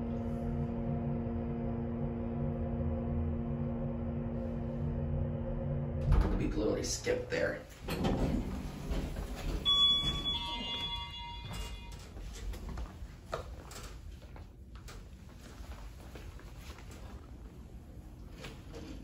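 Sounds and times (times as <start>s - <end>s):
low elevator rumble: 0.0s - 19.0s
footsteps: 7.7s - 17.6s
two-note electronic elevator chime: 9.6s - 12.2s.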